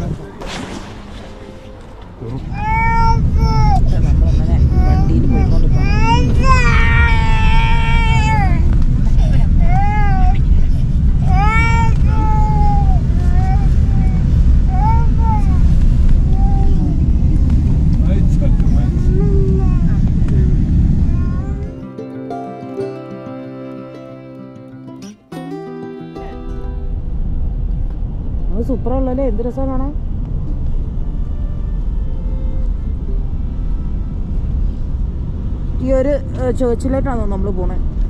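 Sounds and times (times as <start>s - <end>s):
low rumble: 0.0s - 21.8s, 26.8s - 38.0s
small child calling: 2.6s - 3.8s, 4.9s - 8.7s, 11.3s - 15.7s.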